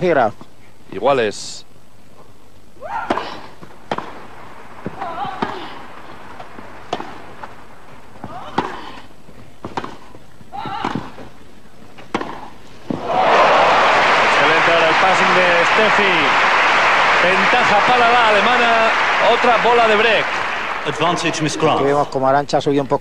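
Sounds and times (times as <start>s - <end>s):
tennis ball struck by rackets: 3.1s - 7.6s, 9.6s - 10.2s, 12.0s - 13.0s
crowd applause: 13.0s - 22.1s.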